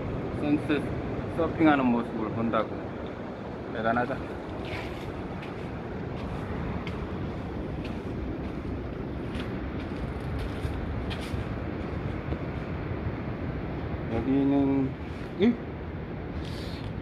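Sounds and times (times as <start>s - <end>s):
ocean surf: 0.0s - 17.0s
wind: 0.0s - 17.0s
footsteps on sand and stones: 4.4s - 12.5s.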